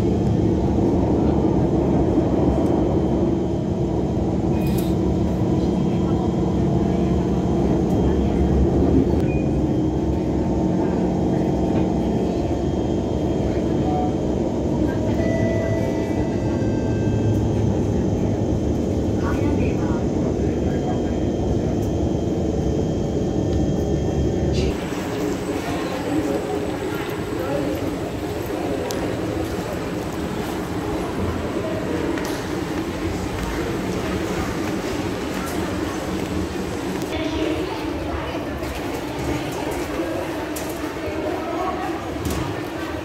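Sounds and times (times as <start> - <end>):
metro train rumble inside carriage: 0.0 - 43.0.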